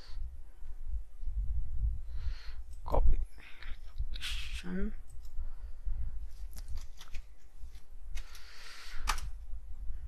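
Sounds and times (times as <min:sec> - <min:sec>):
short breath: 0:08.2 - 0:09.3
keyboard and mouse clicks: 0:09.0 - 0:09.3.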